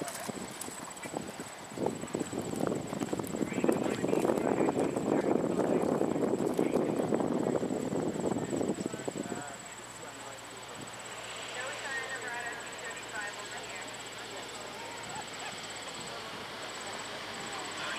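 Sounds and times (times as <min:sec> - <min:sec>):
horse hooves trotting on sand: 0:00.0 - 0:09.1.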